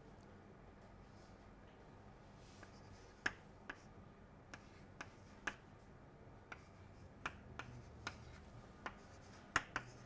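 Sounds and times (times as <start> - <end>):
chalk clicking on blackboard: 2.6 - 3.9, 4.5 - 5.7, 6.5 - 10.0.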